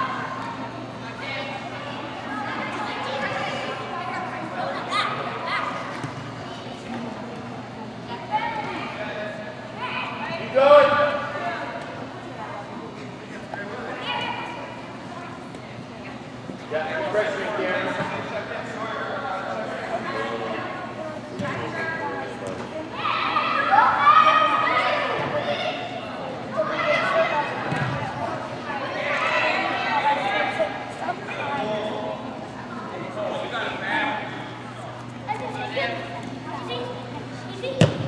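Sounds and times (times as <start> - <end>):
players and spectators shouting: 22.8 - 32.3.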